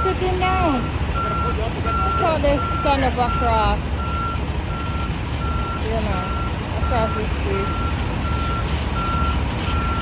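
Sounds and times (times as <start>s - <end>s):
reversing alarm beeping: 0.0s - 10.0s.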